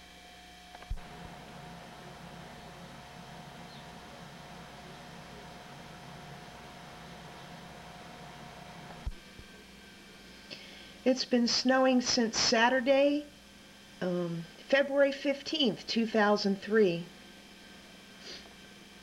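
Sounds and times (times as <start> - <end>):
faint hiss with low hum: 0.0 - 19.0.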